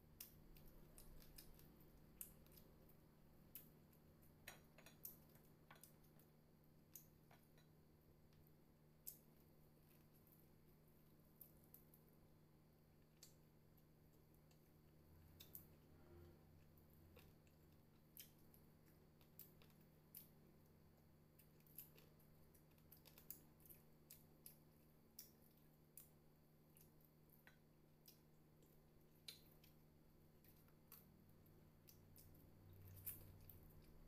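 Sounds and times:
chewing: 0:00.2 - 0:08.4, 0:14.1 - 0:34.0.

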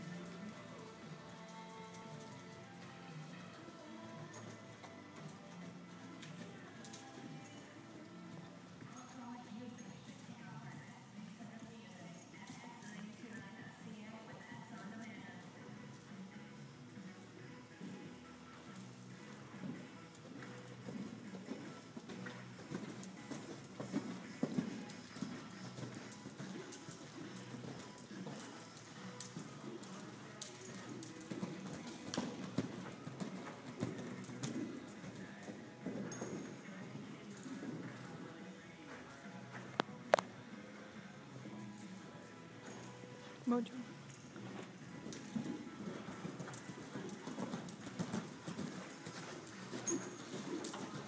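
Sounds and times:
horse hoofbeats on dirt: 0:00.0 - 0:51.0.

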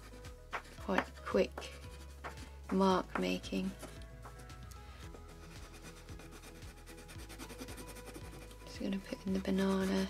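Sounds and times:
quiet background music: 0:00.0 - 0:10.0
crayon rubbing on paper: 0:00.6 - 0:02.4, 0:05.1 - 0:10.0.

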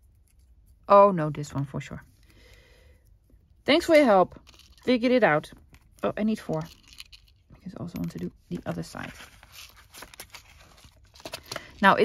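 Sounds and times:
paper rustling: 0:08.7 - 0:11.7.

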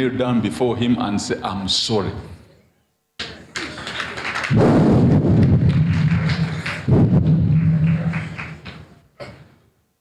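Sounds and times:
distorted rumbling over sound system: 0:03.8 - 0:09.0.

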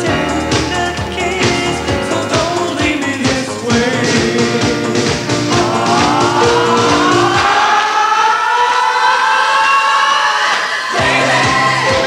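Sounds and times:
pop song with singing: 0:00.0 - 0:12.0.

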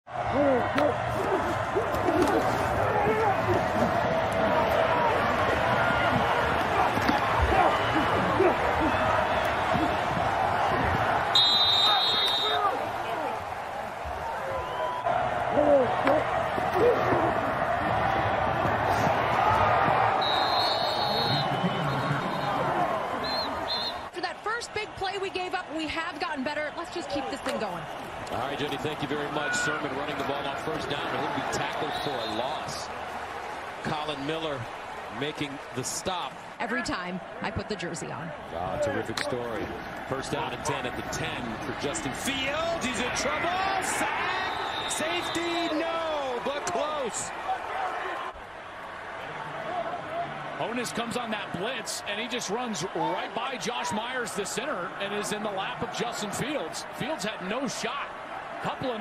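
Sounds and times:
crowd voices and shouts: 0:00.1 - 0:59.0
referee's whistle: 0:11.3 - 0:12.7, 0:20.2 - 0:24.1, 0:31.7 - 0:32.7, 0:44.3 - 0:45.8.

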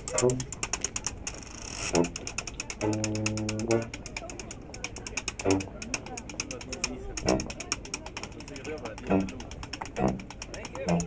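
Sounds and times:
washboard scraping rhythm: 0:00.0 - 0:11.0.

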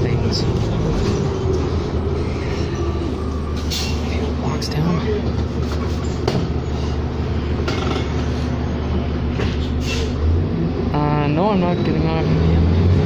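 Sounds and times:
bus engine drone: 0:00.0 - 0:13.0.

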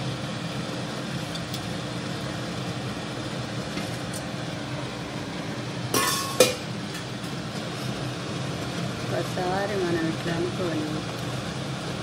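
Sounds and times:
fan or motor humming: 0:00.0 - 0:12.0.

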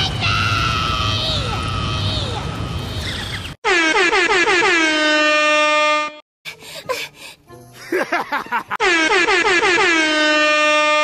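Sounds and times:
loud horn blast: 0:03.6 - 0:06.2, 0:08.8 - 0:11.0.

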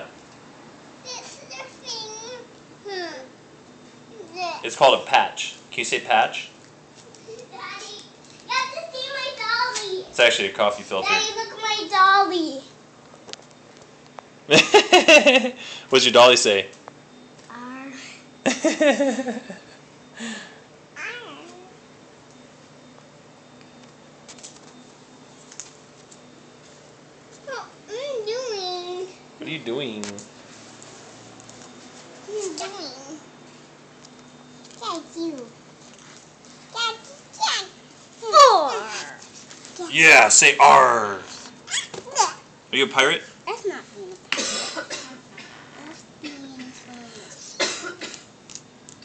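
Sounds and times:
person coughing: 0:44.4 - 0:45.6, 0:47.6 - 0:48.2.

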